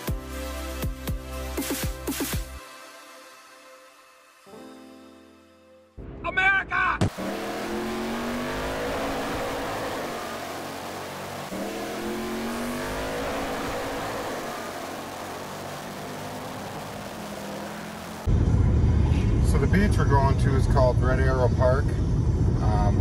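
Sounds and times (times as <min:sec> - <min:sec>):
car engine accelerating: 0:07.0 - 0:23.0
road and tyre noise: 0:07.0 - 0:23.0.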